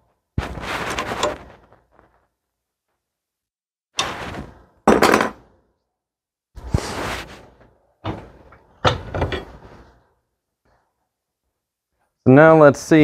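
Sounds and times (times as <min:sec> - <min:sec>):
metal knocks and clanks: 0:08.0 - 0:09.6.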